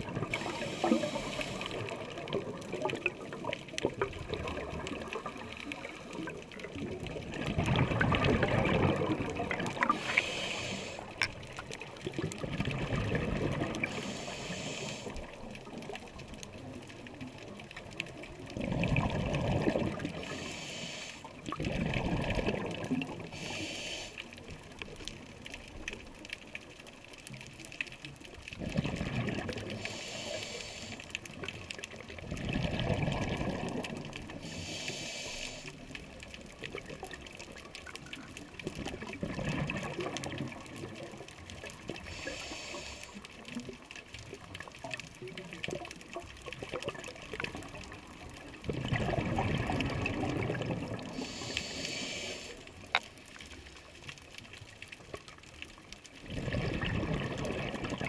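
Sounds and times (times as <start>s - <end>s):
exhaled bubbles gurgling: 0.0s - 58.0s
regulator inhale hiss: 0.3s - 2.1s, 9.8s - 11.2s, 13.8s - 15.4s, 20.1s - 21.4s, 23.3s - 24.4s, 29.6s - 31.3s, 34.3s - 35.9s, 42.0s - 43.4s, 51.1s - 53.0s.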